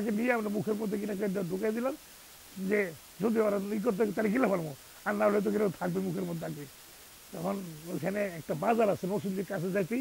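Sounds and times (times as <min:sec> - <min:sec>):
man speaking: 0:00.0 - 0:06.7, 0:07.3 - 0:10.0.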